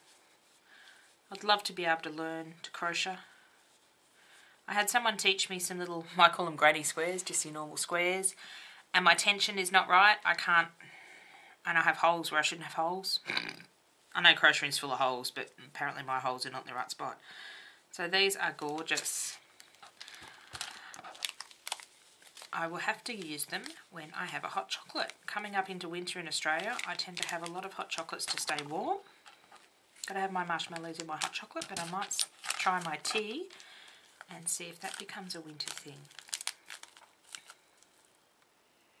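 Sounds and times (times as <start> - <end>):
paper sachet crinkling: 18.4 - 38.2.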